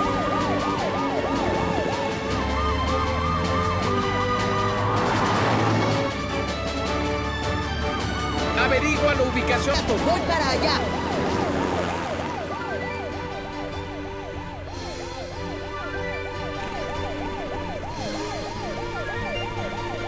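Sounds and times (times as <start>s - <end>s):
background music: 0.0s - 20.0s
siren rising and falling: 0.0s - 20.0s.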